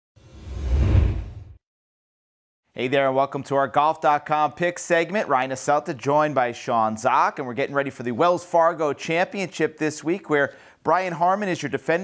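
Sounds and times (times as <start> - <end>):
whoosh: 0.2 - 1.6.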